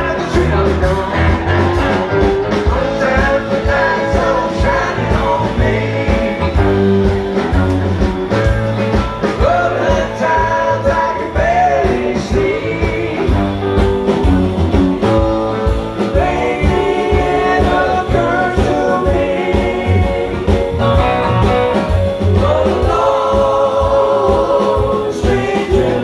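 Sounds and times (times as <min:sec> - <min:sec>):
electric bass: 0:00.0 - 0:26.0
keyboard: 0:00.0 - 0:26.0
steady drum beat: 0:00.0 - 0:26.0.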